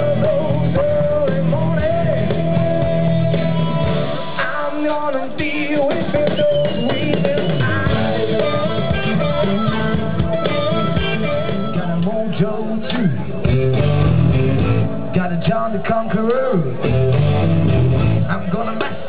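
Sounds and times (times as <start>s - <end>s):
bass guitar: 0.0s - 19.0s
drum kit rock beat: 0.0s - 19.0s
electric guitars: 0.0s - 19.0s.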